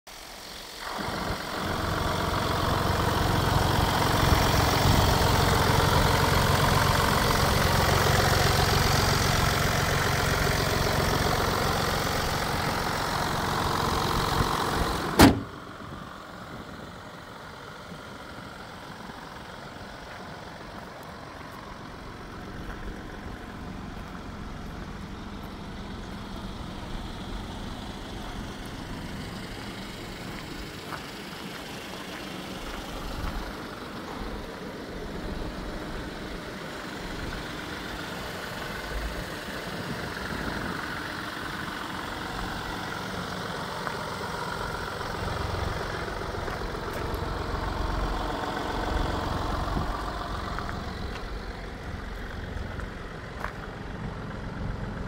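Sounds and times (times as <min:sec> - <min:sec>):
diesel engine idling: 0:00.1 - 0:55.0
car bonnet slamming shut: 0:15.1 - 0:15.6.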